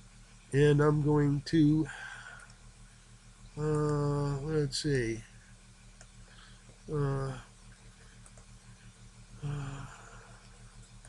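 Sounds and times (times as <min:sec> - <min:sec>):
low steady hum: 0:00.0 - 0:11.0
man saying uh: 0:03.6 - 0:05.3, 0:06.9 - 0:07.5.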